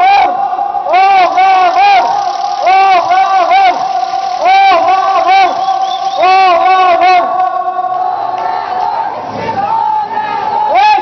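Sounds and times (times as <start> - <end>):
steady tone: 0.0 - 7.8
crowd noise: 0.0 - 11.0
man leading chant over microphone: 0.0 - 11.0.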